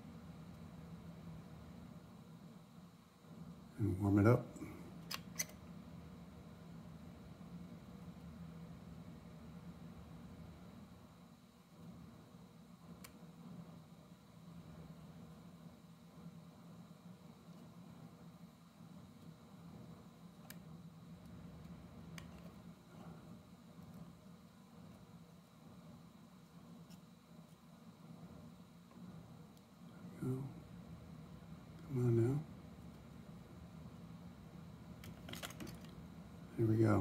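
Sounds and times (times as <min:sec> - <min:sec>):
faint low hum: 0:00.0 - 0:37.0.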